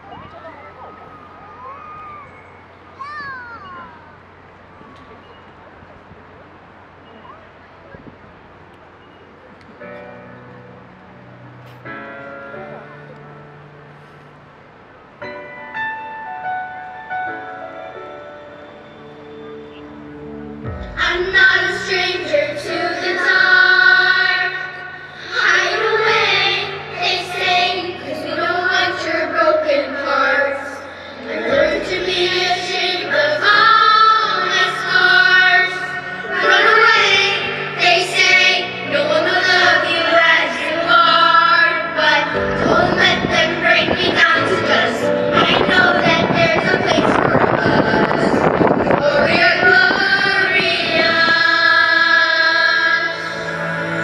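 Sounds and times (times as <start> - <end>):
children calling out: 0.0 - 5.3
murmur of voices in a hall: 0.0 - 54.0
musical accompaniment: 15.2 - 54.0
children singing: 20.9 - 54.0.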